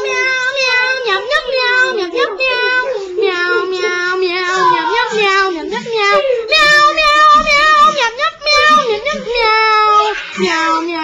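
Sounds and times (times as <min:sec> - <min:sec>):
child singing cat sounds: 0:00.0 - 0:11.0.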